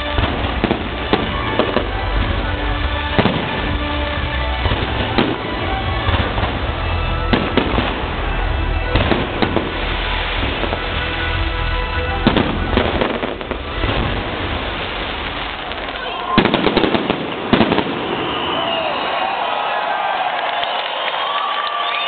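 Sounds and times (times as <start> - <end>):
music playing: 0.0 - 17.9
fireworks bangs and crackles: 0.0 - 19.5.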